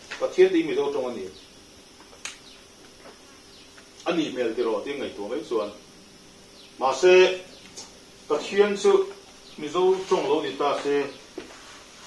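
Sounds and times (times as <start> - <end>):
steady low hum: 0.0 - 12.0
sharp click: 2.0 - 2.5.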